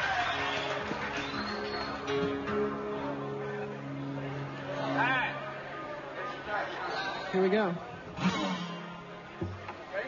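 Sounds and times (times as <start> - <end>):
guitar notes picked: 1.5 - 6.5, 8.0 - 10.0.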